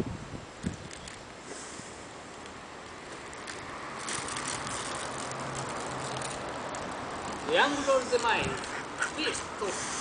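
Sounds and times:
crisp packet crinkling: 3.3s - 7.4s.

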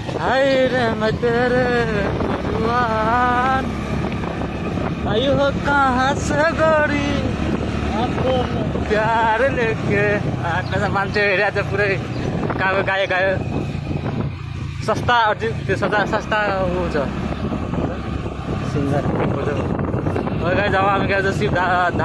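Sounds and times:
vehicle engine running: 0.0s - 22.0s
people talking: 14.8s - 17.2s, 18.7s - 19.7s, 20.4s - 22.0s.

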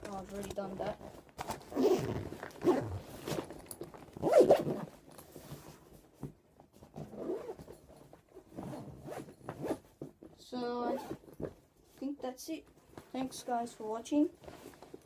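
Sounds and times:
bag handling: 0.1s - 10.4s
zipper being pulled: 1.4s - 5.5s, 7.0s - 7.8s, 8.4s - 9.9s, 10.8s - 11.5s.

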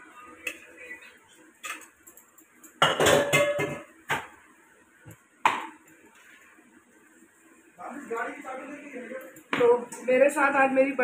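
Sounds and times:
metal pot knocking on steel bowl: 2.8s - 4.2s.

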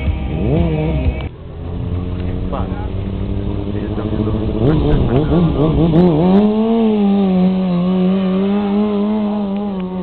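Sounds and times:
motorcycle engine revving: 0.0s - 10.0s.

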